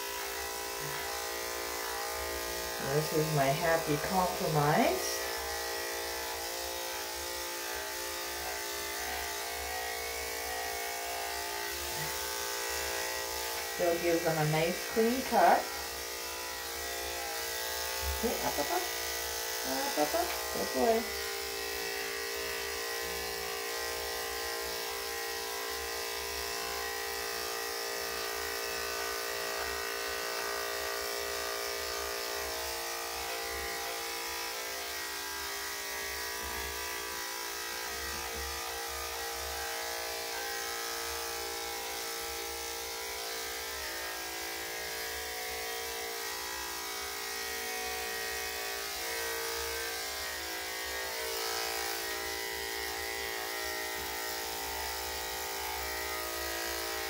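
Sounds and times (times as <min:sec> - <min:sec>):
electric clippers buzzing: 0:00.0 - 0:57.0.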